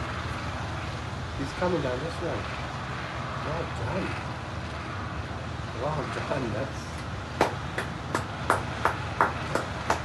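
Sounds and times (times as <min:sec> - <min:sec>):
person clapping slowly: 0:07.4 - 0:10.0.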